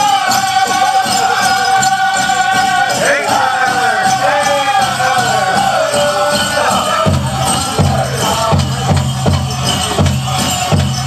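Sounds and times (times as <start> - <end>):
bells jingling: 0.0 - 11.0
group singing high-pitched song: 0.0 - 11.0
steady drumbeat: 0.0 - 11.0.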